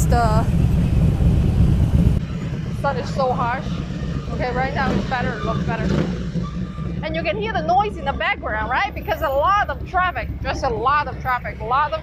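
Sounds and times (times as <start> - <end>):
cars and motorcycles in traffic: 0.0 - 12.0.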